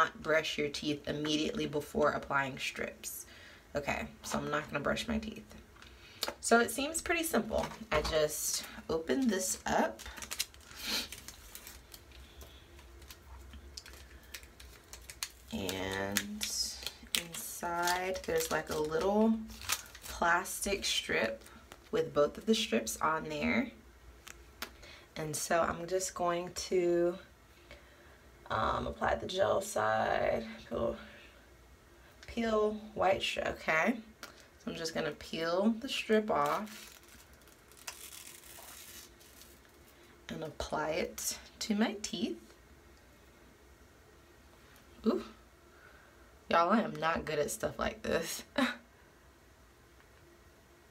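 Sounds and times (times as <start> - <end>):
strip peeled from plastic backing: 9.2 - 20.3, 36.4 - 39.8
packet crinkling: 9.2 - 21.9, 36.4 - 39.9.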